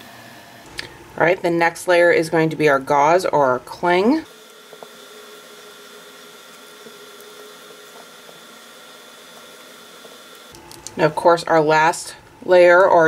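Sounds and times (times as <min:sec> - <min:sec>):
thin electrical hum: 0:00.0 - 0:13.0
steady hiss: 0:04.2 - 0:11.1.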